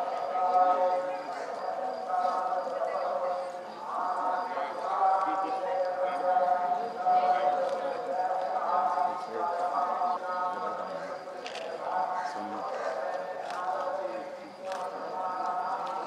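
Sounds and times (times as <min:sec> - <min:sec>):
people's voices: 0:00.0 - 0:16.0.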